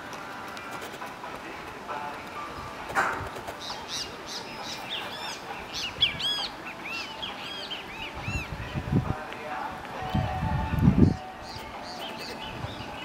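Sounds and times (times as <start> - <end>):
small birds chirping: 2.6 - 8.9, 10.9 - 13.0.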